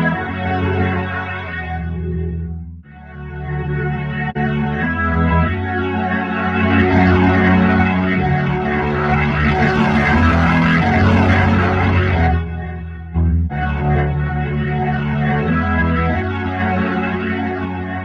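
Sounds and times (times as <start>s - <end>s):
swirling rotary speaker chords: 4.4s - 18.0s.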